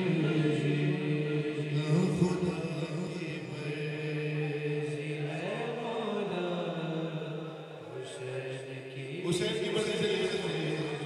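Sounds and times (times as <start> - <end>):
men chanting: 0.0 - 11.0.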